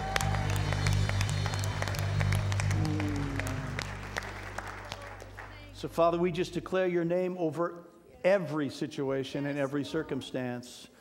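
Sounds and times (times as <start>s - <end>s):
band holding final chord: 0.0s - 4.8s
congregation applauding: 0.0s - 6.3s.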